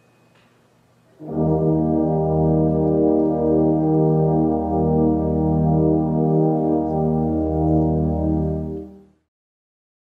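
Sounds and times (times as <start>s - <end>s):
brass band chord: 1.2s - 9.2s
deep tubas: 1.2s - 9.3s.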